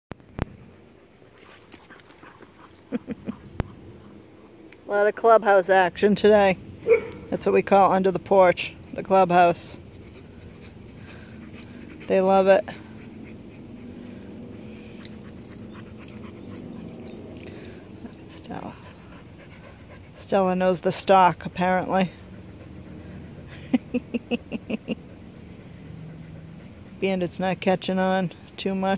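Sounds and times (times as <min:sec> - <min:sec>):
dogs panting and moving: 0:00.4 - 0:28.9.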